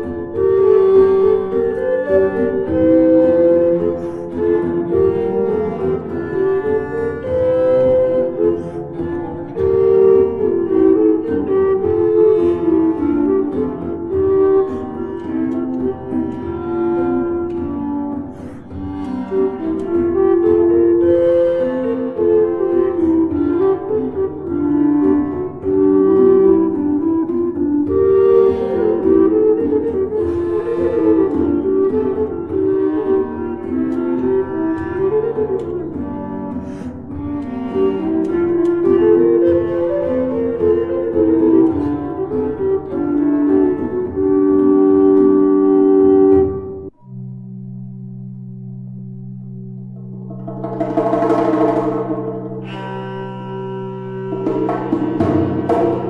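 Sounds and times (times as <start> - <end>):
woodwind ensemble music: 0.0 - 47.0, 50.0 - 56.0
drum strikes: 50.0 - 53.1, 54.3 - 56.0.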